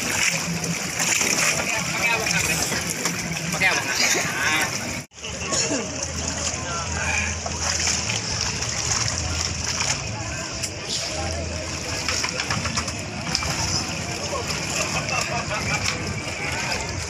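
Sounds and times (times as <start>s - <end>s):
water splashing and sloshing: 0.0s - 17.0s
voices in background: 1.3s - 17.0s.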